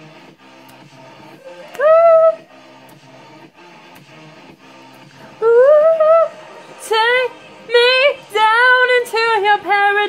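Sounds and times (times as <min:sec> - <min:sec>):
woman singing pop song: 0:01.3 - 0:02.6, 0:05.2 - 0:10.0.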